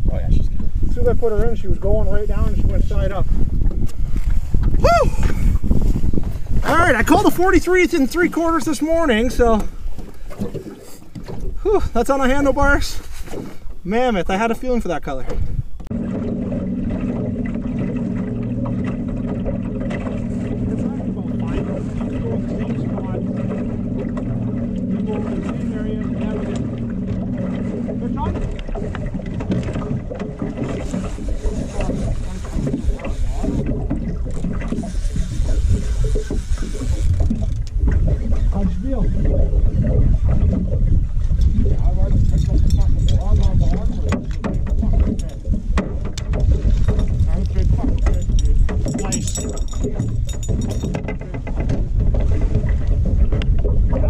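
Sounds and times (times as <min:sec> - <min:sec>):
outboard motor humming: 0:00.0 - 0:54.0
irregular low rumbling: 0:15.4 - 0:54.0.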